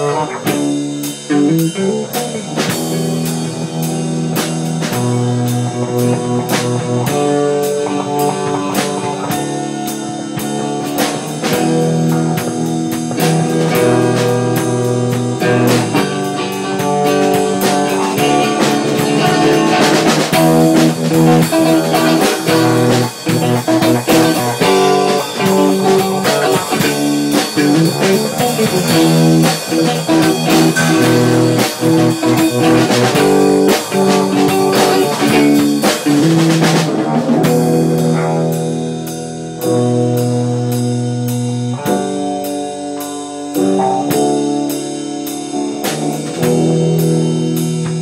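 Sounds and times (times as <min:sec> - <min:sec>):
rock band playing: 0:00.0 - 0:48.0.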